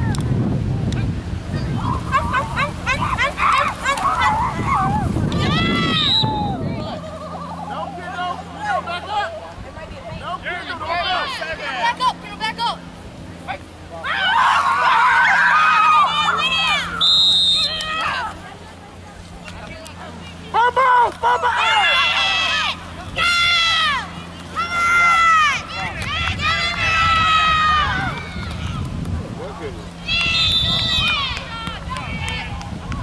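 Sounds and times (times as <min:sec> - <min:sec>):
spectators shouting: 0:01.6 - 0:09.4, 0:14.0 - 0:18.4, 0:20.5 - 0:28.9, 0:29.9 - 0:33.0
referee's whistle blast: 0:17.0 - 0:17.8, 0:30.3 - 0:31.1.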